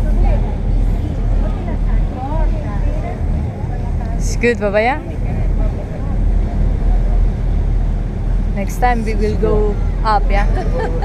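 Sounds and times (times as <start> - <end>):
faint voices: 0.0 - 8.6
boat engine and water rush: 0.0 - 11.0.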